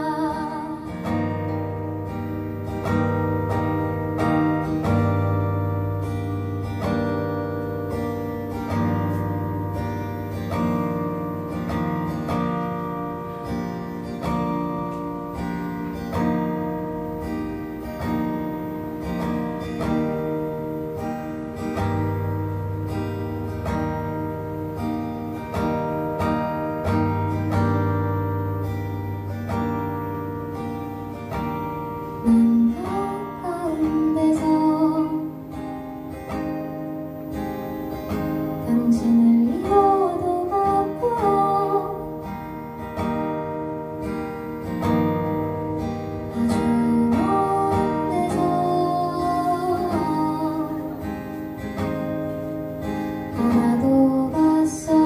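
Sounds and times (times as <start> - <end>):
woman singing: 0.0 - 13.5, 31.9 - 35.8, 38.1 - 43.0, 44.7 - 52.1, 52.8 - 55.0
acoustic guitar strumming: 0.0 - 55.0.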